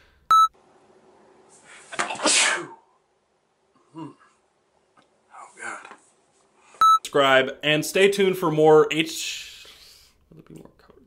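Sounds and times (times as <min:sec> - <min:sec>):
short electronic beep: 0:06.8 - 0:07.0.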